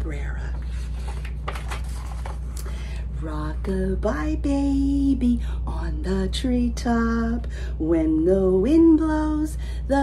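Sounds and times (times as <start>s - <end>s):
steady low hum: 0.0s - 10.0s
book pages rustling: 0.7s - 2.6s.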